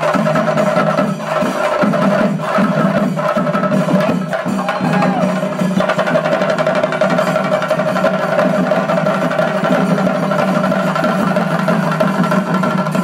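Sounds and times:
drum ensemble playing: 0:00.0 - 0:13.0.

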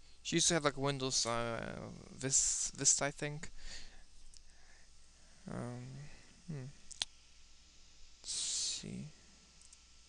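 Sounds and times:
computer mouse click: 0:09.6 - 0:09.8.

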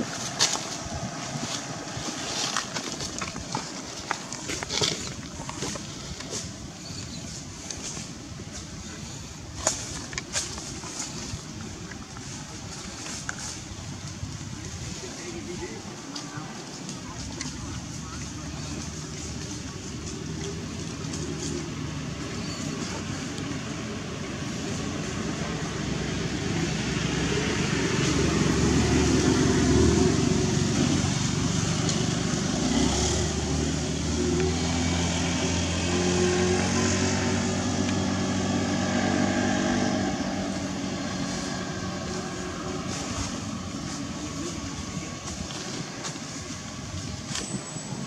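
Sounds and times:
vehicle engine passing: 0:17.5 - 0:46.9.

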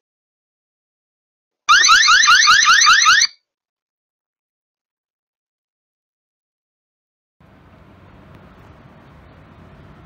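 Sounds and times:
electronic alarm siren whooping: 0:01.7 - 0:03.4.

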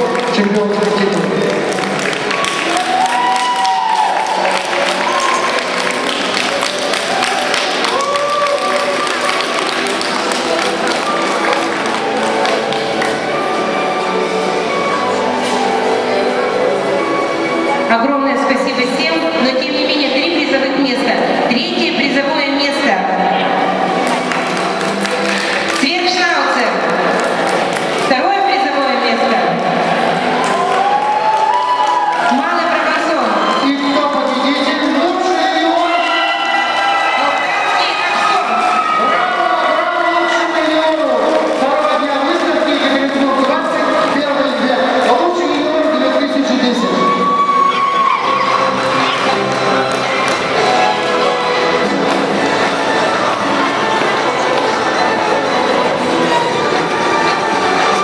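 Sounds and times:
audience clapping: 0:00.0 - 0:13.4, 0:23.9 - 0:26.1, 0:26.7 - 0:28.1, 0:29.9 - 0:33.7, 0:36.4 - 0:39.4, 0:48.4 - 0:55.0
crowd applauding and cheering: 0:00.0 - 0:16.0, 0:23.4 - 0:58.0
music playing: 0:00.0 - 0:58.0.

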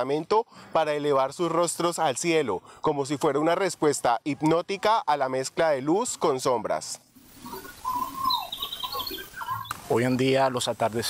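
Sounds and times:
high bird twittering: 0:07.2 - 0:10.6
birds calling: 0:07.2 - 0:11.0.

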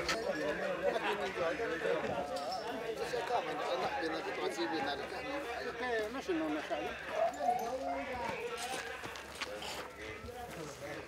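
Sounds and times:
group of people chatting: 0:00.0 - 0:11.0.

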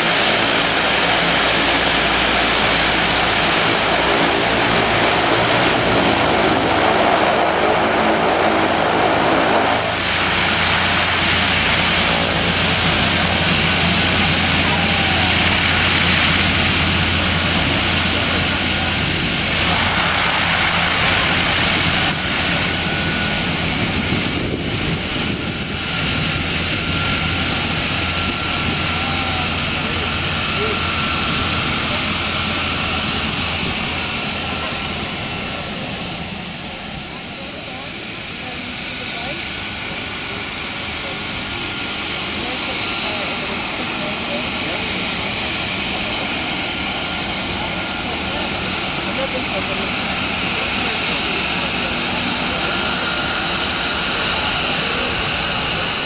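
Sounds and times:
propeller noise: 0:00.0 - 0:56.0
turbine whine: 0:00.0 - 0:56.0.

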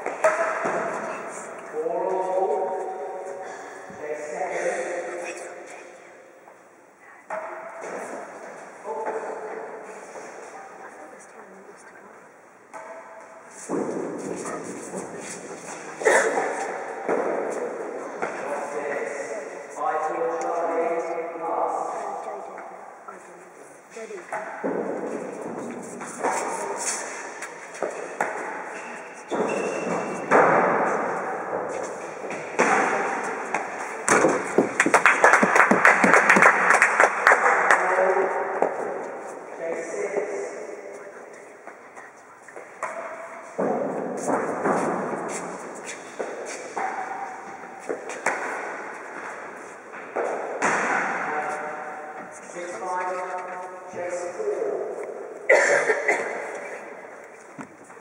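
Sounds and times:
ball knocked by rackets echoing: 0:00.0 - 0:01.1, 0:29.3 - 0:36.3, 0:50.0 - 0:51.4
ball thudding off walls and floor: 0:29.3 - 0:36.1, 0:50.0 - 0:51.4.

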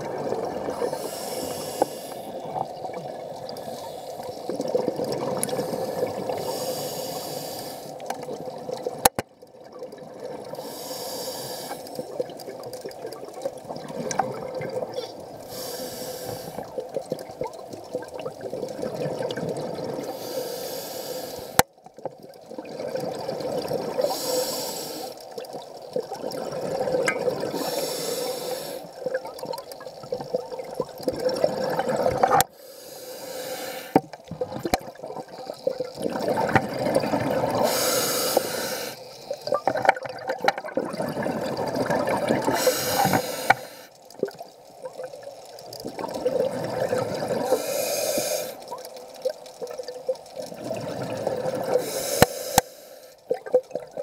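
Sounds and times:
regulator hissing inhale: 0:00.8 - 0:02.4, 0:03.5 - 0:04.4, 0:05.4 - 0:08.1, 0:10.6 - 0:12.0, 0:15.5 - 0:16.7, 0:20.1 - 0:21.6, 0:24.0 - 0:25.2, 0:27.5 - 0:29.0, 0:32.5 - 0:34.0, 0:37.6 - 0:39.6, 0:42.5 - 0:44.0, 0:47.4 - 0:48.8, 0:51.7 - 0:53.3
bubbling exhale underwater: 0:26.0 - 0:28.0, 0:29.0 - 0:32.5, 0:34.3 - 0:43.5, 0:45.8 - 0:48.8, 0:50.4 - 0:52.3.

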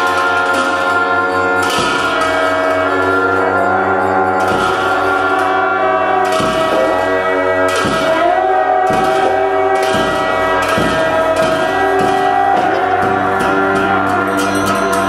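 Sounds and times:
double-reed shawms playing melody: 0:00.0 - 0:15.0
sharp percussion strikes: 0:00.0 - 0:15.0.

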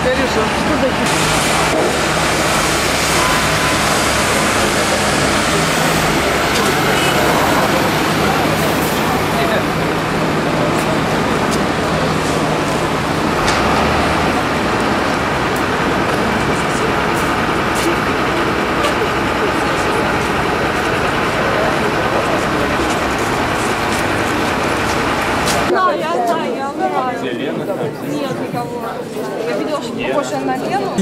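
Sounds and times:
city street traffic: 0:00.0 - 0:31.0
people talking: 0:00.0 - 0:31.0.

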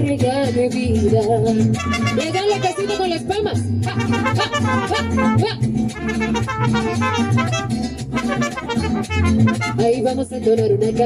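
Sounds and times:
mariachi band playing: 0:01.4 - 0:10.3
trumpet: 0:01.8 - 0:10.0.

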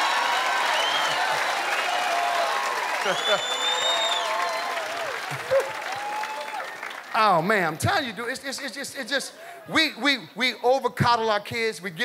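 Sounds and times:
whoops: 0:00.0 - 0:06.8
audience applauding: 0:00.0 - 0:08.2
long high whistles: 0:00.2 - 0:02.2, 0:03.1 - 0:05.0
audience laughing: 0:03.0 - 0:03.7.

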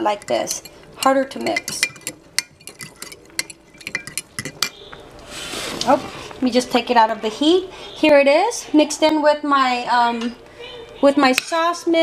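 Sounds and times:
fork clinking against glass: 0:01.4 - 0:04.8.

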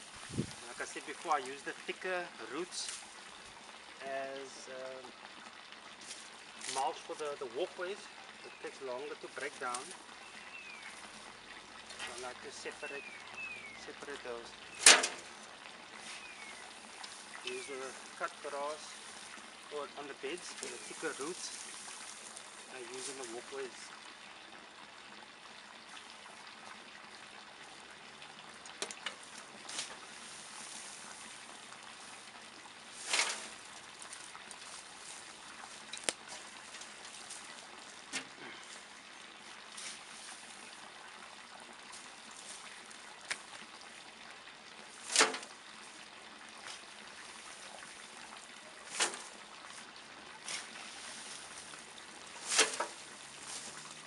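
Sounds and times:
dry grass rustling and scraping: 0:00.0 - 0:01.7, 0:02.8 - 0:03.4, 0:06.0 - 0:07.2, 0:14.7 - 0:23.6, 0:29.0 - 0:38.8, 0:39.6 - 0:40.8, 0:41.9 - 0:43.6, 0:44.9 - 0:46.0, 0:48.7 - 0:54.0
roots thrown aside swishing: 0:33.0 - 0:33.6, 0:48.9 - 0:49.3, 0:52.4 - 0:53.8.

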